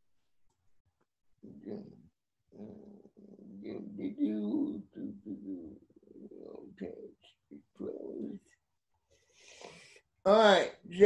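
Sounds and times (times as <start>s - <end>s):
person speaking drawn out: 2.6s - 8.4s.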